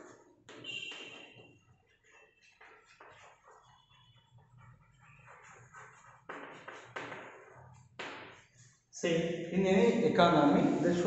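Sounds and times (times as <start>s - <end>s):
chalk scratching on blackboard: 0.0s - 8.9s.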